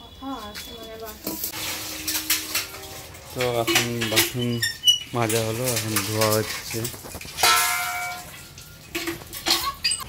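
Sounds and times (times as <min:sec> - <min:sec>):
pot being scrubbed: 0:01.2 - 0:10.0
steel dishes clanking: 0:01.2 - 0:10.0.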